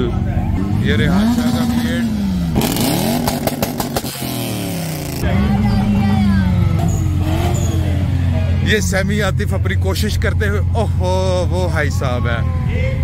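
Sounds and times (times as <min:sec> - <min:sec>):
car engine revving: 0:00.0 - 0:11.6
sharp exhaust pops: 0:02.6 - 0:04.4.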